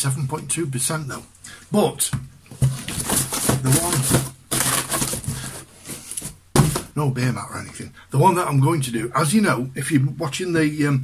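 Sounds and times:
cardboard box rustling: 2.5 - 6.9
knocks on cardboard box: 6.5 - 6.9.

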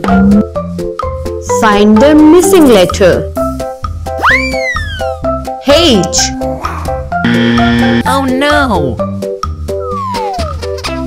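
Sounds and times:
cartoon boing sound effect: 0.0 - 0.5
bouncy children's music: 0.0 - 7.3, 8.0 - 11.0.

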